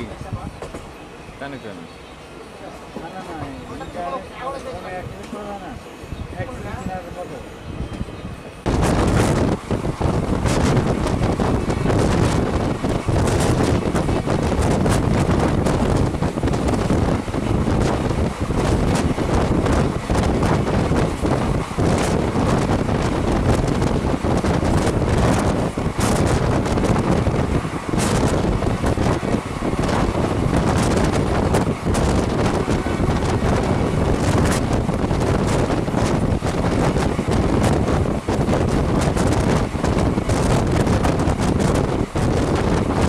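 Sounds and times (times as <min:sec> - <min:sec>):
train running on rails: 0:00.0 - 0:43.0
wind buffeting microphone: 0:05.9 - 0:43.0.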